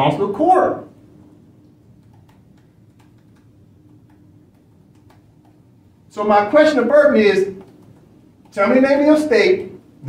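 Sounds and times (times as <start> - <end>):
laptop keys clicking: 2.0 - 5.6, 7.6 - 8.6.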